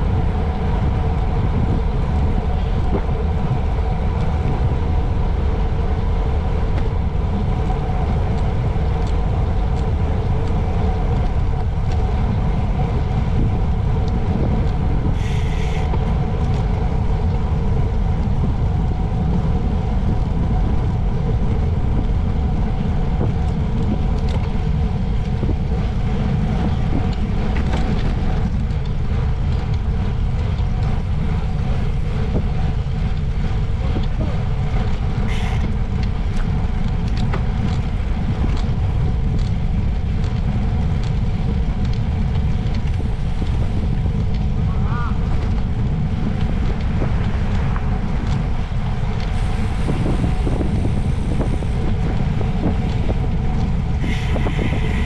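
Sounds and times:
bicycle tyres on asphalt: 0.0s - 55.0s
wind rushing over microphone: 0.0s - 55.0s.

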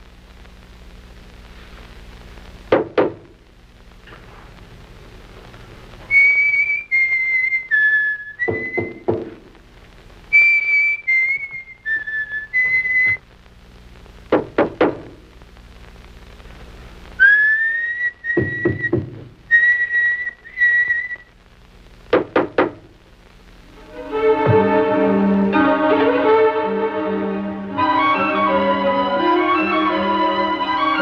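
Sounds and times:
man whistling: 6.1s - 9.1s, 10.3s - 13.2s, 17.2s - 21.3s
quick knocks: 22.1s - 22.8s.

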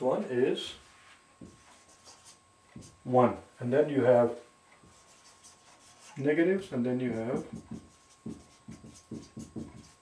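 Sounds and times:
marker writing on whiteboard: 1.4s - 3.1s, 4.7s - 10.0s.

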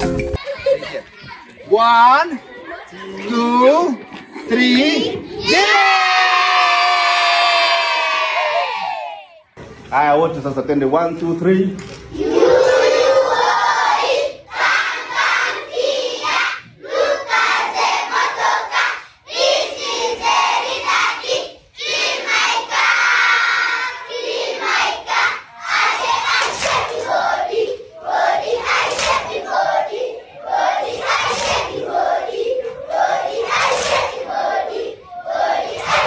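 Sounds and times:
children shouting in unison: 5.3s - 9.4s.

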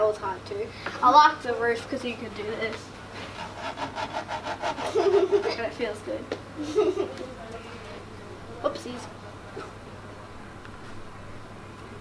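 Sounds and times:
finger rasping over ridged cardboard: 3.2s - 5.4s.

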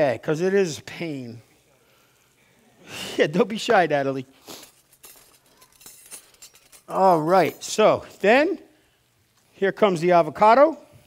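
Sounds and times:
clinks of kitchen utensils and dishes: 4.6s - 8.2s.

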